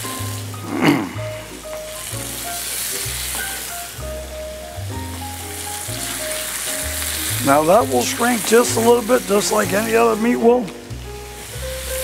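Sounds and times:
background music: 0.0 - 12.0
meat sizzling in a frying pan: 0.0 - 12.0.

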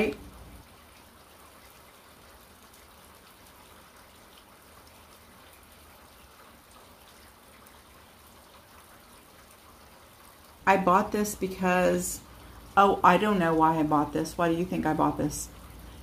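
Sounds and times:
faint room tone hiss: 0.0 - 16.0.

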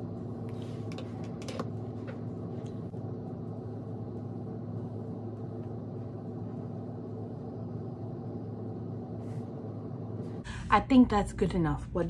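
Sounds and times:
machine humming: 0.0 - 10.7.

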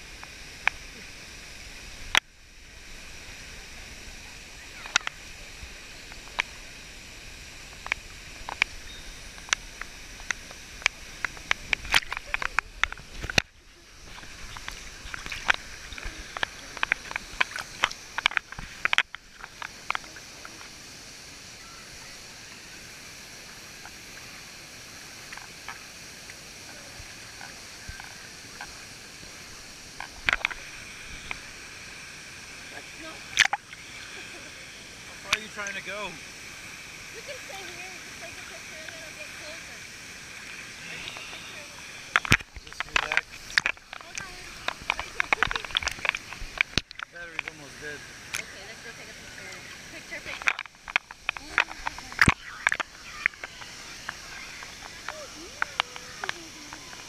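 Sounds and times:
rushing water: 0.0 - 57.0
water sloshing and splashing: 7.5 - 20.8, 25.2 - 57.0.

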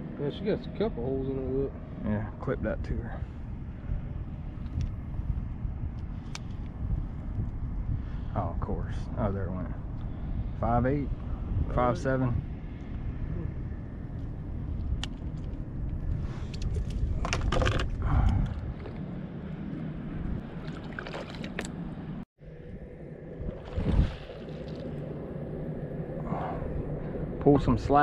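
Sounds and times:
steady low rumble: 0.0 - 28.0.

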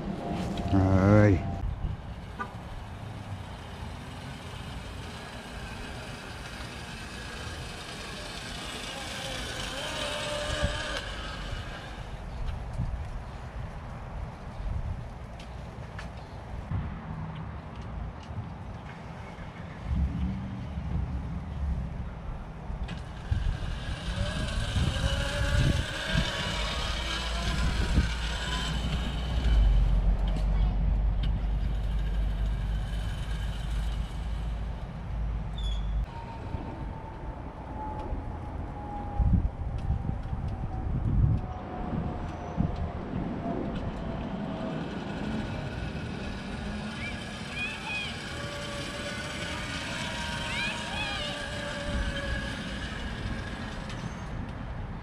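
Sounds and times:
wind rumble on microphone: 0.0 - 2.8, 10.2 - 15.4, 16.6 - 47.4
long slowly falling tone: 0.0 - 12.4, 22.9 - 30.0, 36.0 - 54.4
passing vehicles: 0.0 - 55.0.

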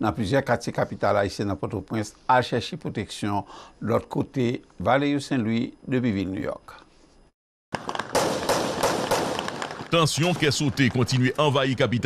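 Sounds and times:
gunfire cracks: 7.8 - 11.1.

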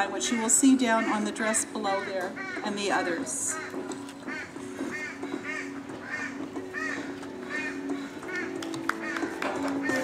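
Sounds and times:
bird calling: 0.0 - 10.0
quiet background music: 0.0 - 10.0.

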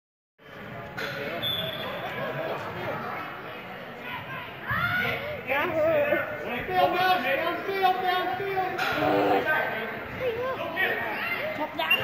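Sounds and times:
children and adults chattering: 0.4 - 12.0.

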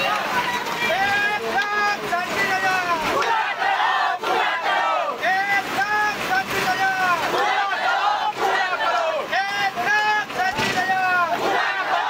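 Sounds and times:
women chanting together: 3.1 - 5.2, 7.3 - 9.3, 11.3 - 12.0.

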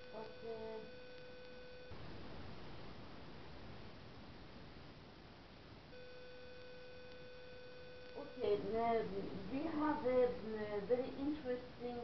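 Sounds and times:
faint hiss: 0.0 - 12.0
steady electronic tone: 5.9 - 8.6.

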